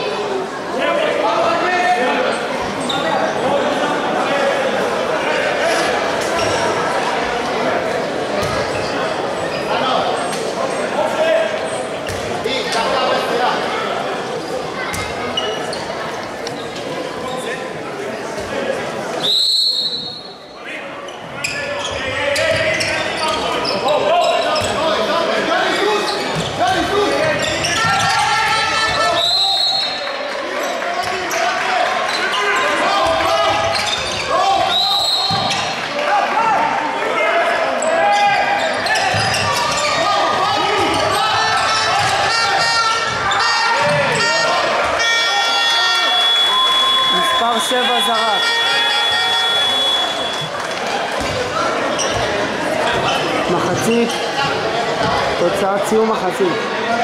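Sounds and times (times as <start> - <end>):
people shouting and chattering: 0.0 - 57.0
referee's whistle blasts: 19.2 - 20.4, 34.7 - 35.6, 45.1 - 50.6
held high tone: 45.7 - 50.5.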